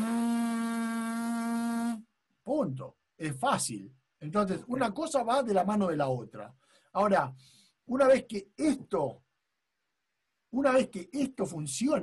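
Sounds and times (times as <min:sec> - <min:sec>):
lips buzzing steady pitch: 0:00.0 - 0:02.1.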